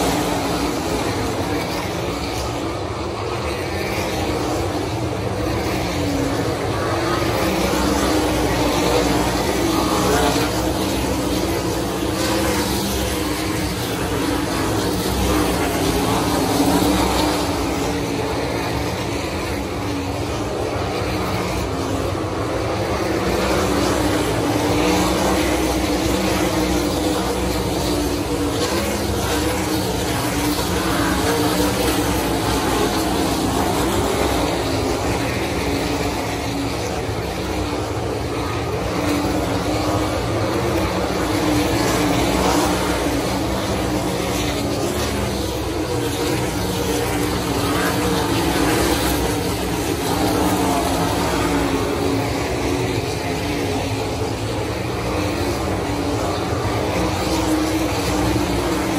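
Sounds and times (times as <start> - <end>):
race car engines roaring: 0.0 - 58.9.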